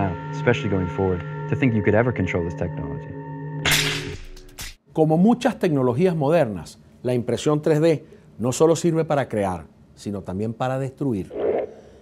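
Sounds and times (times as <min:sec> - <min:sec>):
background music chord: 0:00.0 - 0:04.0.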